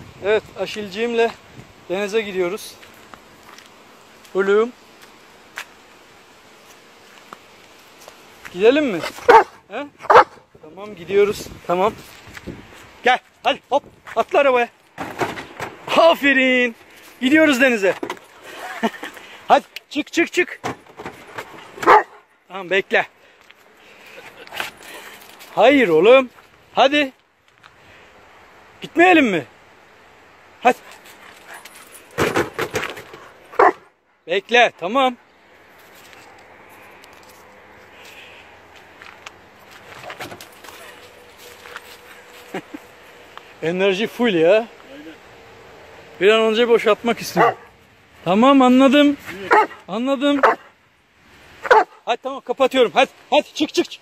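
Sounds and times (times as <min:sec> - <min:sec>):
dog making excited vocal sounds: 0:09.1 - 0:10.4, 0:47.4 - 0:47.7.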